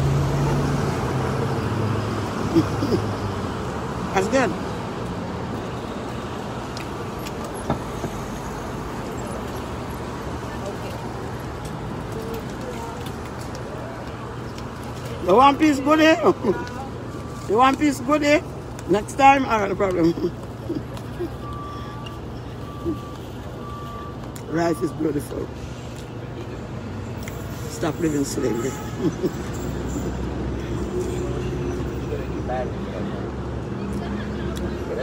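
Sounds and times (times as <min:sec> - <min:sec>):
city street traffic: 0:00.0 - 0:35.0
reversing alarm beeping: 0:21.4 - 0:25.0.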